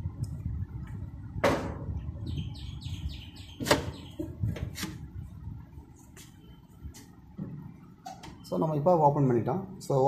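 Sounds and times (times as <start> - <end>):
small bird chirping: 2.2 - 4.5.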